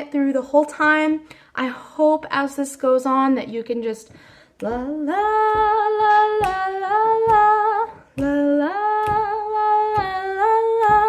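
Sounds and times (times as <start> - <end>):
woman singing wordless melody: 0.0 - 11.0.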